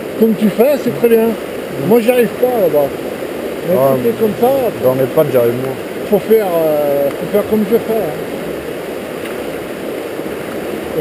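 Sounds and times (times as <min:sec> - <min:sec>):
river rushing through rapids: 0:00.0 - 0:11.0
man talking: 0:00.2 - 0:03.0, 0:03.6 - 0:08.3.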